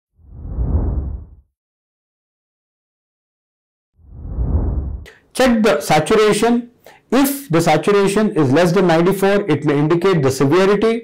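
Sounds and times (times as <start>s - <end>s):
low whoosh: 0.2s - 1.4s, 4.0s - 5.1s.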